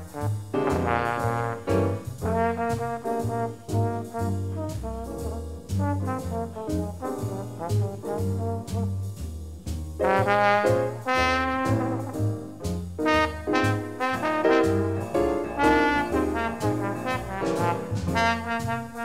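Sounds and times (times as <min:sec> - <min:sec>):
trumpet: 0:00.0 - 0:09.1, 0:10.0 - 0:19.0
drums: 0:00.0 - 0:19.0
trombone: 0:00.0 - 0:19.0
plucked string bass: 0:03.2 - 0:10.3, 0:14.8 - 0:18.4.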